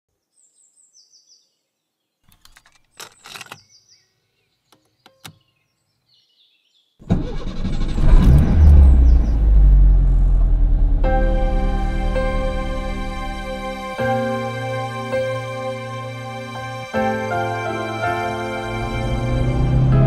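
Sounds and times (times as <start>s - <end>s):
car engine rumbling: 7.0s - 14.0s, 18.2s - 20.0s.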